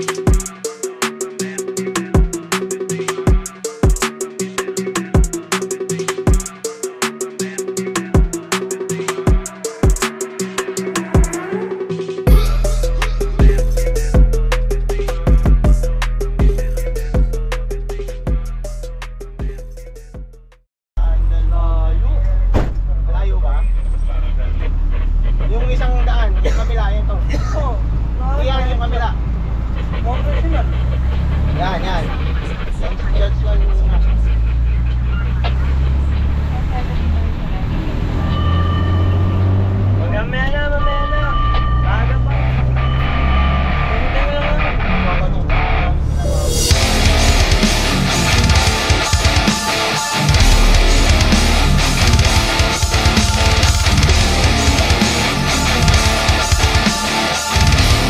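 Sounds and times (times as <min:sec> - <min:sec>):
loud guitar music: 0:00.0 - 0:19.6, 0:42.3 - 0:58.0
wavering siren tones: 0:37.9 - 0:39.9, 0:40.5 - 0:44.2.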